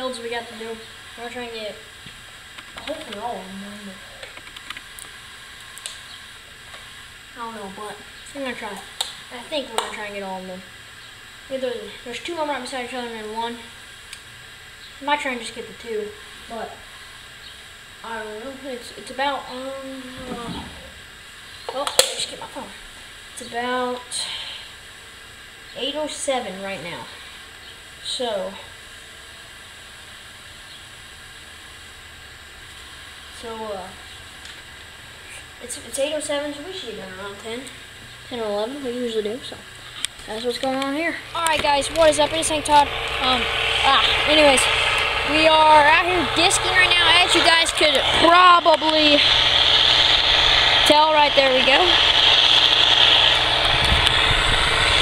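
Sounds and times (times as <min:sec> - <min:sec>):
low hum: 0:00.0 - 0:55.0
steady hiss: 0:00.0 - 0:55.0
distant tractor running: 0:38.3 - 0:55.0
wind rumbling on microphone: 0:41.2 - 0:55.0.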